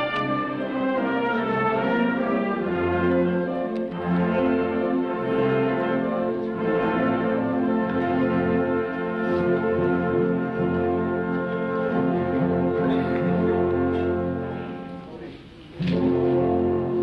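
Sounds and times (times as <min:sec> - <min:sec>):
wind band playing chords: 0:00.0 - 0:17.0.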